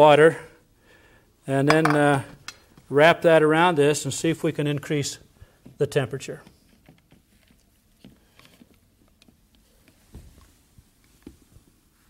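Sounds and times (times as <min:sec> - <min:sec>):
soft taps and rustles: 0:06.4 - 0:12.0.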